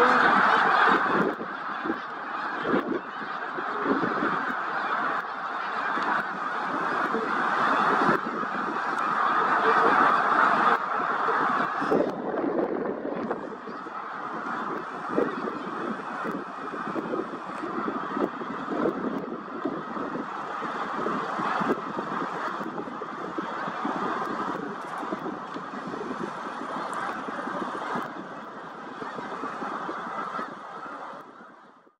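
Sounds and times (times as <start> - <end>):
flock of geese honking: 0.0 - 31.9.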